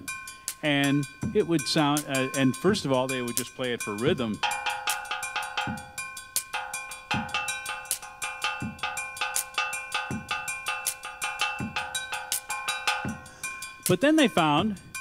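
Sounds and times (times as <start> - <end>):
low drum beat: 0.7 - 14.8
small steel pan struck: 4.3 - 13.3.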